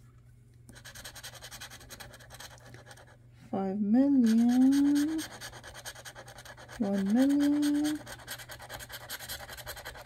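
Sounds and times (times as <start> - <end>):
scratch-off ticket being scratched: 0.7 - 3.1, 4.2 - 10.0.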